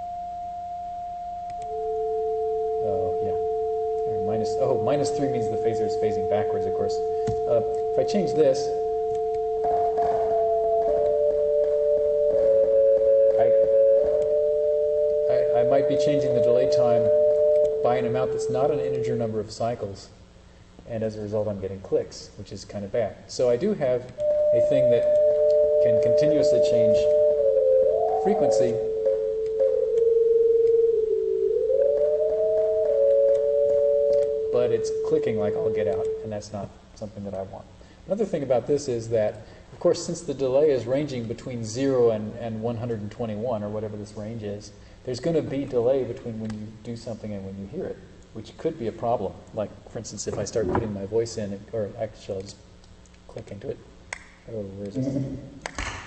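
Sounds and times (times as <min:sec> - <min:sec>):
steady electronic sine tones: 0:00.0 - 0:22.4, 0:23.0 - 0:49.8
clicks: 0:01.4 - 0:01.7.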